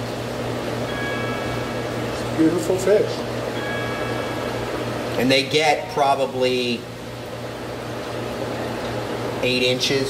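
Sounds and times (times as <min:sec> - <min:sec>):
equipment hum and hiss: 0:00.0 - 0:10.0
faint high steady tones: 0:00.4 - 0:06.9.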